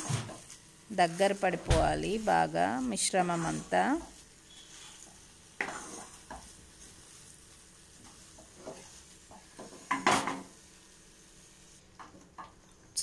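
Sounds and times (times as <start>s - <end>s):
spatula scraping a pan: 2.2s - 10.7s.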